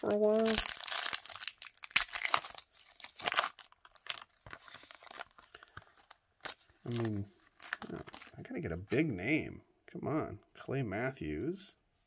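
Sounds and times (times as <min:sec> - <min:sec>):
foil wrapper tearing and crinkling: 0:00.0 - 0:05.8, 0:06.4 - 0:08.3.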